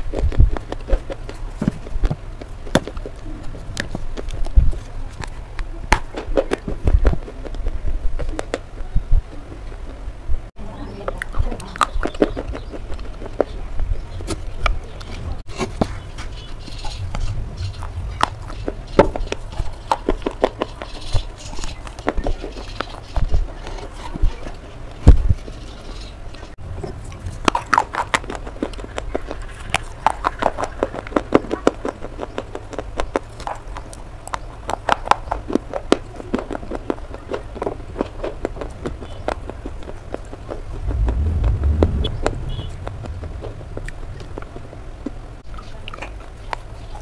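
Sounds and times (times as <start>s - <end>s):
low rumble: 16.8s - 19.8s, 40.6s - 45.5s.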